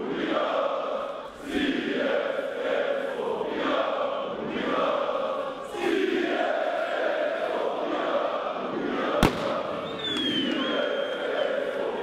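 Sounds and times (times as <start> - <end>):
crowd chanting: 0.0 - 12.0
firecracker bang: 9.2 - 10.5
thin high whistle: 9.8 - 11.6.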